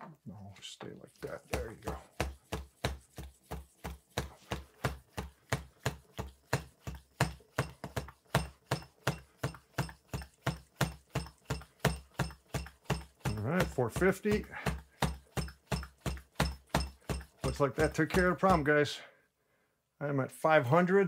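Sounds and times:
hand shock pump strokes: 1.1s - 18.8s.

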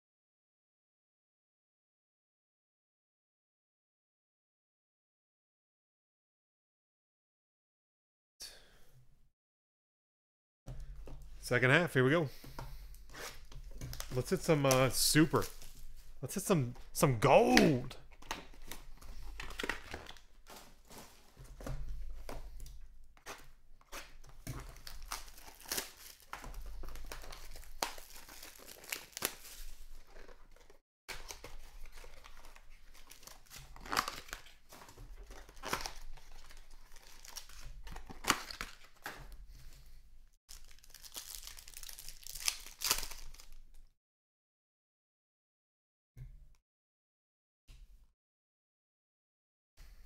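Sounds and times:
cards shuffling: 12.8s - 21.1s
foil wrappers crinkling: 12.8s - 22.6s, 24.0s - 39.1s, 40.5s - 43.8s.

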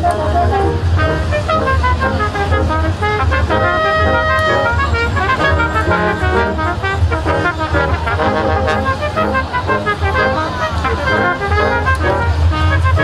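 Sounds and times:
brass ensemble playing: 0.0s - 13.0s
steady low rumble: 0.0s - 13.0s.

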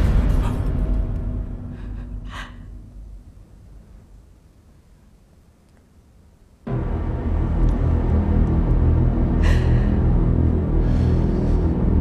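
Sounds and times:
low rumble: 0.0s - 4.8s, 6.7s - 12.0s
woman gasping: 1.7s - 2.8s
faint breath: 10.7s - 12.0s.

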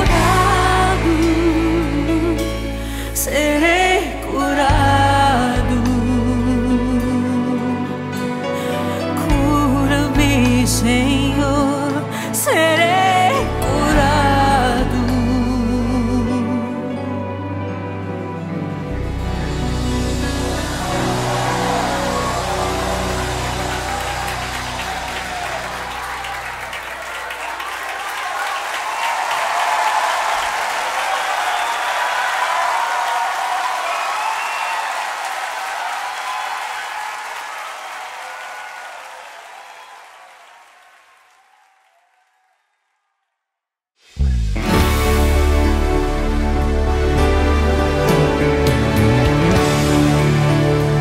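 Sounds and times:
bass: 0.0s - 27.3s, 44.1s - 51.0s
gospel song music: 0.0s - 36.4s, 44.6s - 51.0s.

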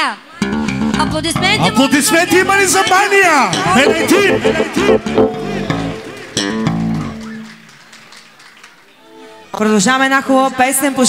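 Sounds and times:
live band music: 0.4s - 3.0s, 3.6s - 7.6s.

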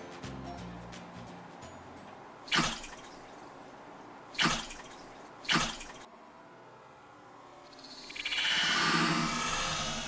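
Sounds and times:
water splashing and sloshing: 2.5s - 3.6s, 4.3s - 6.1s.

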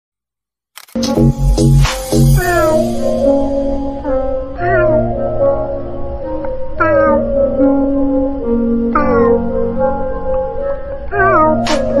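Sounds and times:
sustained music notes: 1.0s - 12.0s
cat meowing: 9.0s - 9.5s, 11.1s - 12.0s.

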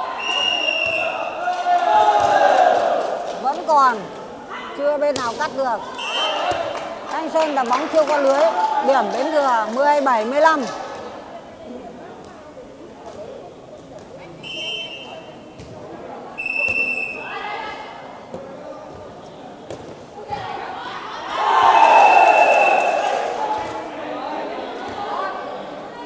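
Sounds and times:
voices of players and spectators: 0.0s - 26.0s
short high whistle blasts: 0.2s - 1.2s, 14.4s - 15.2s, 16.4s - 17.3s, 21.8s - 23.1s.

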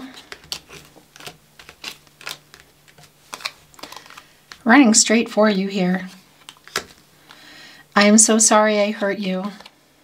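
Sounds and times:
cards clicking and tapping: 0.1s - 4.6s, 6.4s - 7.4s.

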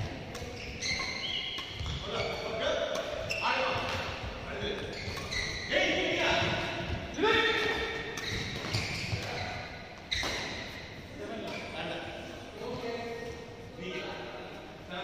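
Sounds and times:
shoes squeaking on court floor: 0.0s - 12.0s
racket hitting shuttlecock: 0.1s - 5.6s, 7.4s - 10.8s.

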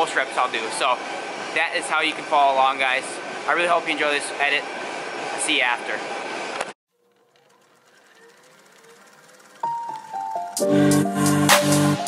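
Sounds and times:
background music: 9.6s - 12.0s.

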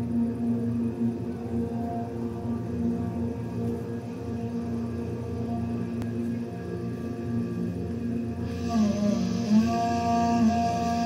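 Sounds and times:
long held musical tones: 0.0s - 11.0s
steady drone: 0.0s - 11.0s
voice with wavering pitch: 8.5s - 11.0s.

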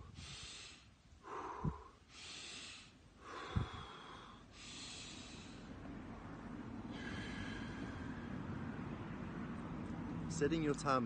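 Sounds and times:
man breathing deeply: 0.0s - 8.9s.

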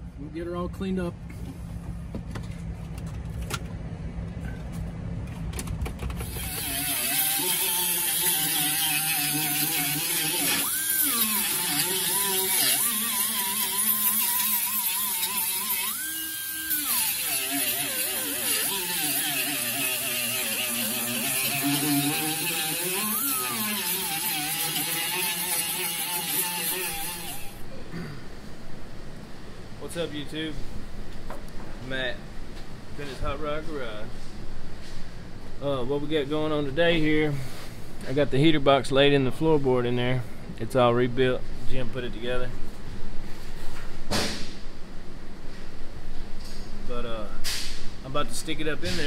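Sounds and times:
pneumatic rotary tool whine: 6.2s - 27.6s.

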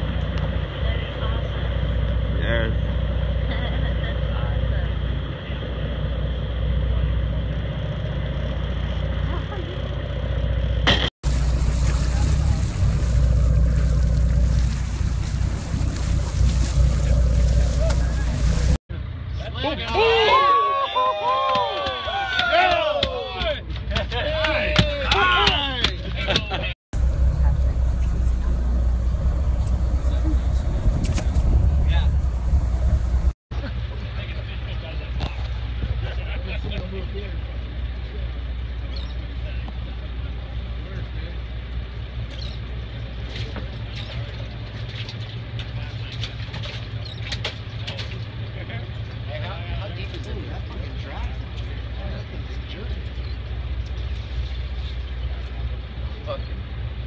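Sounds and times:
boat engine rumbling: 0.0s - 57.0s.

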